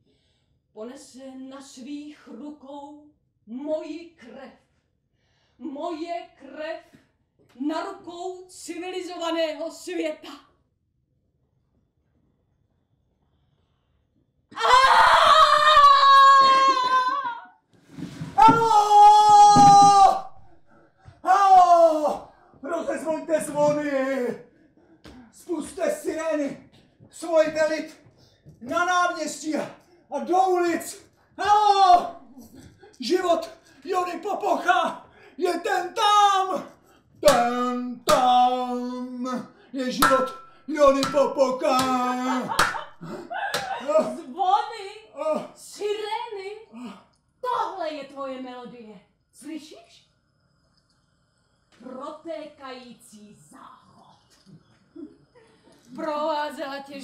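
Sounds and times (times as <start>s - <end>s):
person wailing: 14.6s - 17.4s, 18.4s - 20.3s, 41.6s - 44.3s
wordless vocal sounds: 21.9s - 44.4s.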